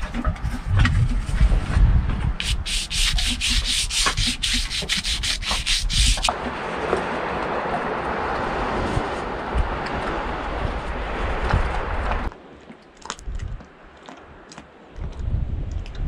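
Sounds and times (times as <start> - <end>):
paintbrush scrubbing on paper: 2.4 - 6.3.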